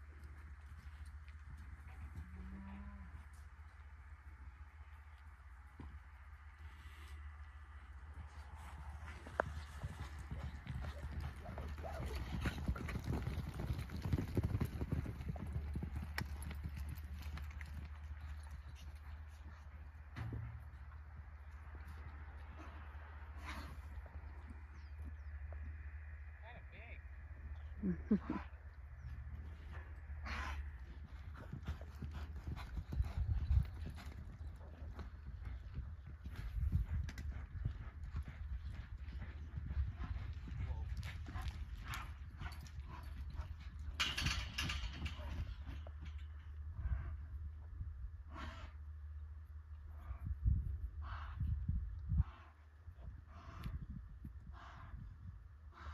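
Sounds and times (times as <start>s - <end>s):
hoofbeats on soft dirt: 0.0s - 26.3s, 27.4s - 55.9s
steady low rumble: 16.5s - 55.9s.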